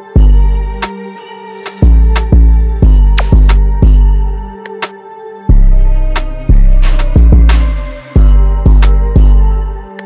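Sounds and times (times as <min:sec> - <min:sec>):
synth chords: 0:00.0 - 0:10.0
deep bass notes: 0:05.5 - 0:09.7.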